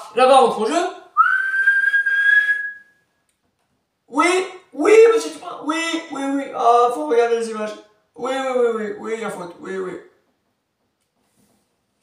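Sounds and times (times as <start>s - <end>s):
person whistling through lips: 1.2s - 3.1s.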